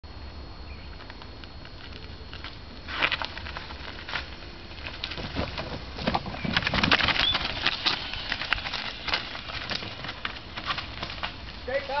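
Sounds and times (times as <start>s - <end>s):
bike tyres crunching on gravel: 0.8s - 12.0s
bike clattering: 1.8s - 12.0s.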